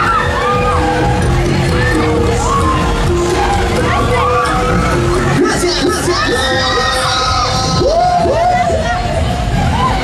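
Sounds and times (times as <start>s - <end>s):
loud fairground music: 0.0s - 10.0s
riders shouting and screaming: 0.0s - 10.0s.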